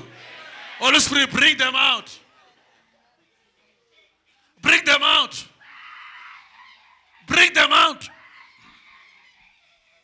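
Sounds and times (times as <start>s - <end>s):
faint crowd noise in a hall: 0.0s - 10.0s.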